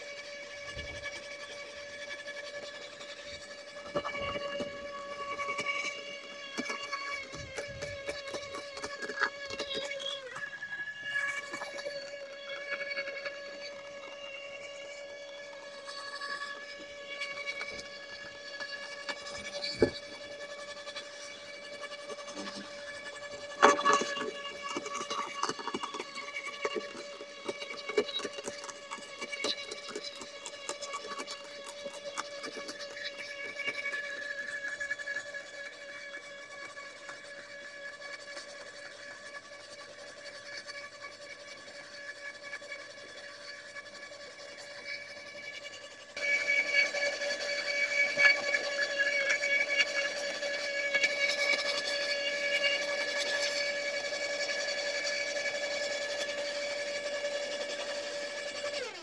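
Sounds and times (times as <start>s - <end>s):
shredder motor whine: 0.0s - 59.0s.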